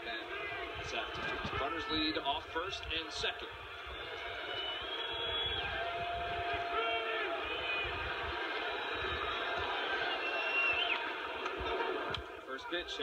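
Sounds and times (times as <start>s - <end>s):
crowd cheering: 0.0s - 13.0s.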